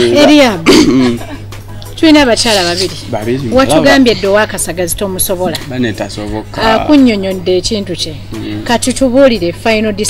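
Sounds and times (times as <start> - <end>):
person speaking: 0.0 - 1.2, 2.4 - 4.7, 8.3 - 8.8
low steady background music: 0.0 - 10.0.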